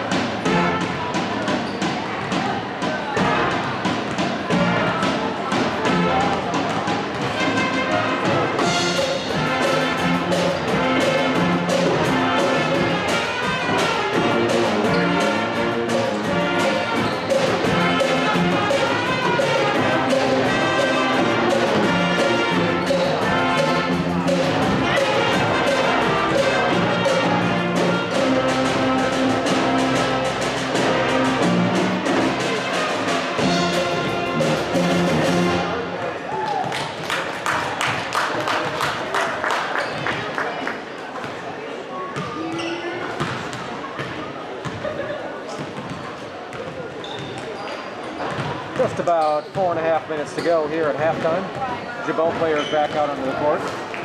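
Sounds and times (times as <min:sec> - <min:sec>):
brass band playing a tune: 0:00.3 - 0:01.2, 0:03.2 - 0:03.9, 0:04.5 - 0:05.2, 0:05.8 - 0:06.4, 0:07.3 - 0:36.0
drum kit steady beat: 0:08.5 - 0:35.6.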